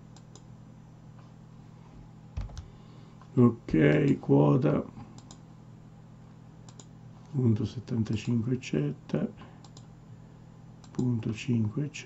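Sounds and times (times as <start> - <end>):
faint electrical hum: 0.0 - 12.0
mouse clicks: 6.7 - 6.9.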